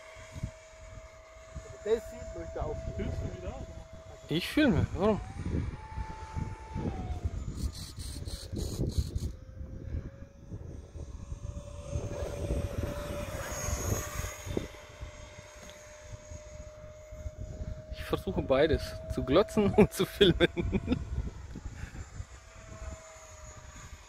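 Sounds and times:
electric ducted fan whine: 0.0s - 24.0s.

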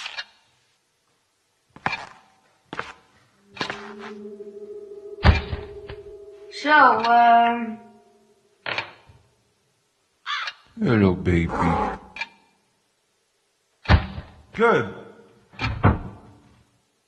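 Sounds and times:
low held tone: 3.3s - 8.6s.

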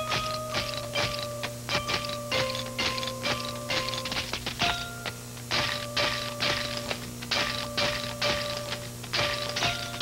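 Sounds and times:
mechanical ratcheting: 0.0s - 4.8s, 5.5s - 10.0s.

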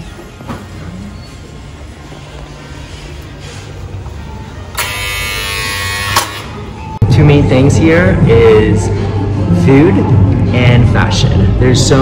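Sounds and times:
background music: 0.0s - 12.0s
electric door buzzer: 4.7s - 6.6s.

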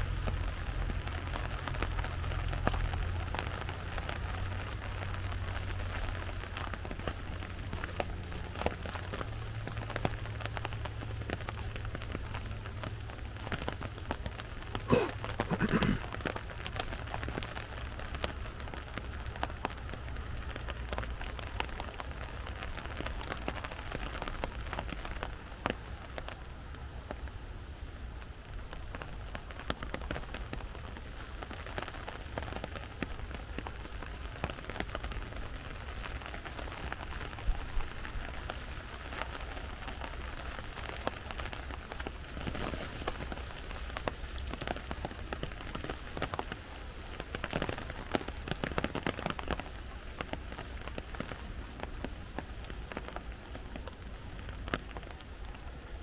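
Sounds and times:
rain pattering on leaves: 0.0s - 56.0s.

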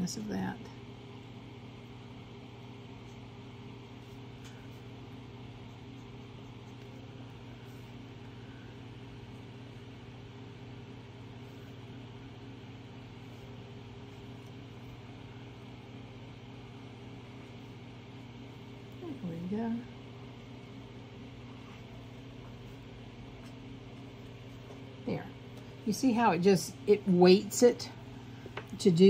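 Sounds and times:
low machine hum: 0.0s - 29.0s.

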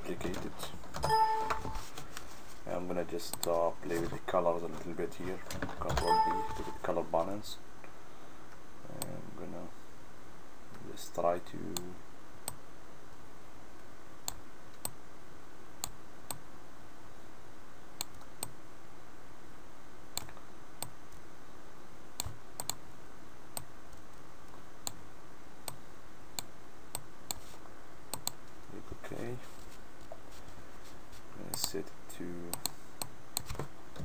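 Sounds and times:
steady background hiss: 0.0s - 34.0s.

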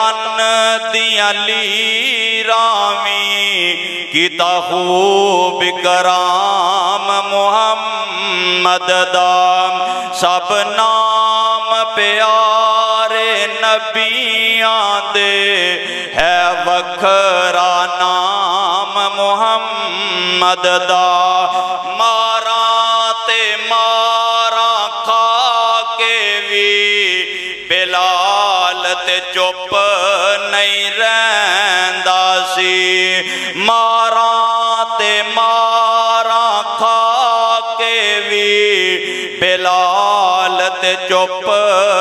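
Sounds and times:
man chanting: 0.0s - 42.0s
man singing into a microphone: 0.0s - 42.0s
breaths between phrases: 9.8s - 10.2s, 15.8s - 16.2s, 27.2s - 27.6s, 33.2s - 33.6s, 39.0s - 39.4s.

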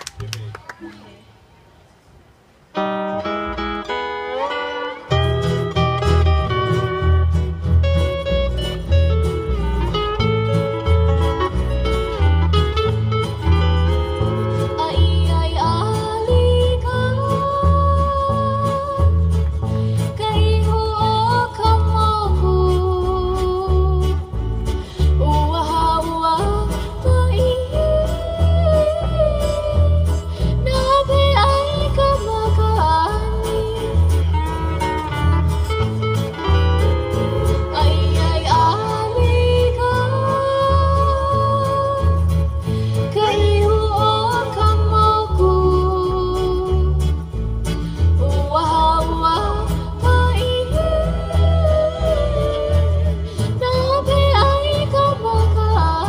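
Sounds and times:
steel guitar: 2.8s - 56.0s
strummed ukuleles and guitars: 2.8s - 56.0s
woman singing falsetto: 48.4s - 56.0s.

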